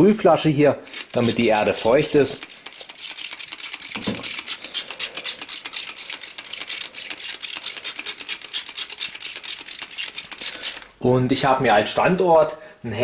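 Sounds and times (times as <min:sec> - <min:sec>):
spray bottle squirts: 0:00.9 - 0:10.9.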